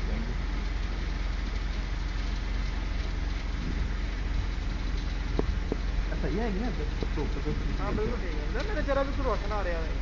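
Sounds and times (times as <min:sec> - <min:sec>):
road or wind noise hiss: 0:00.0 - 0:10.0
vehicle engine running: 0:00.0 - 0:10.0.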